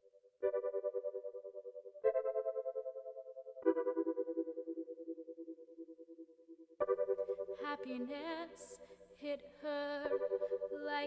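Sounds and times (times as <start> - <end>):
keyboard chords with tremolo: 0.0 - 11.0.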